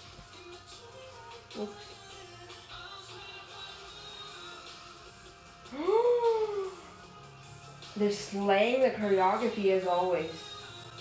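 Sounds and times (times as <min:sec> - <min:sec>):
faint pop music from screen: 0:00.0 - 0:11.0
woman exclaiming ooh: 0:05.7 - 0:06.9.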